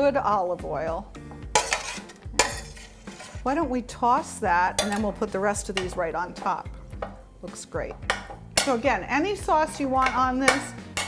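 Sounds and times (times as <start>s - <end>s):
metal spoon scraping pan: 1.5s - 3.7s, 4.3s - 7.2s, 8.1s - 9.0s, 9.7s - 11.0s.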